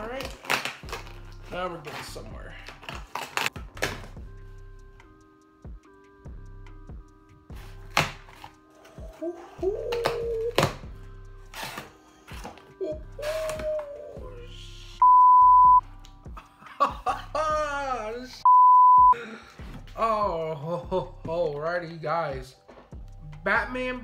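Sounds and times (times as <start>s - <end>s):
background music: 0.0s - 24.0s
electronic beeps: 15.0s - 15.8s, 18.4s - 19.2s.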